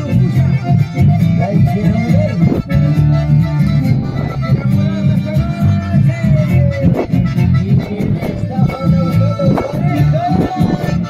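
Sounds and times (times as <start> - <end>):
acoustic guitar: 0.0 - 11.0
bandoneons playing held chords: 0.0 - 11.0
electric bass: 0.0 - 11.0.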